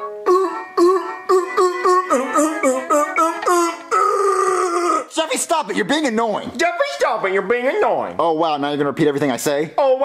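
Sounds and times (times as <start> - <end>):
person singing into toy microphone: 0.0 - 4.4.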